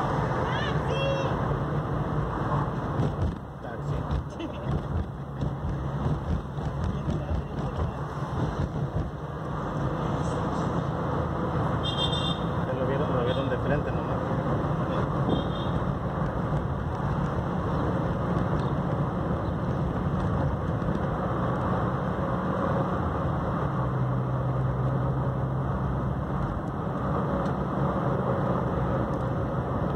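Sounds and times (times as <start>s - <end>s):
car engine rumble: 0.0s - 29.9s.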